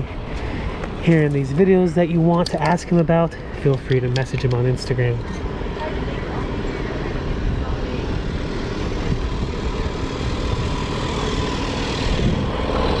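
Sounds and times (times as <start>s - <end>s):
faint voices: 0.0s - 10.6s.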